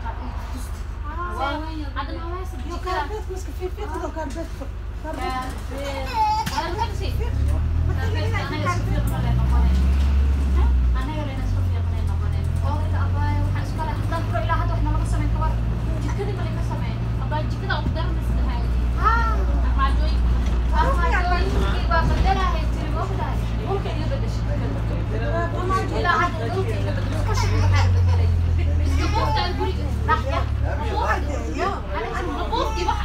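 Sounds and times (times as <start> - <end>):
bus engine droning: 0.0 - 33.0
passengers talking: 0.0 - 33.0.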